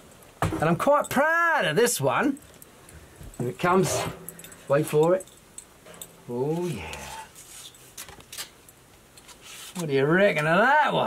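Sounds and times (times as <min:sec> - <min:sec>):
cardboard rustling and scraping: 0:06.5 - 0:08.6, 0:09.2 - 0:10.5.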